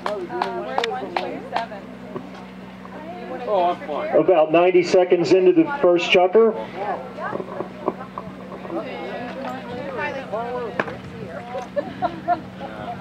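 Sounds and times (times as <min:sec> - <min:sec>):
low hum: 0:00.0 - 0:13.0
voices talking: 0:00.0 - 0:13.0
commentary: 0:03.0 - 0:11.8.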